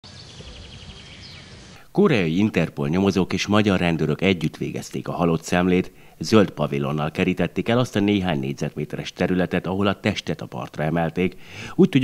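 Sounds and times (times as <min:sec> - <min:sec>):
faint bird chirps: 0:00.0 - 0:01.8.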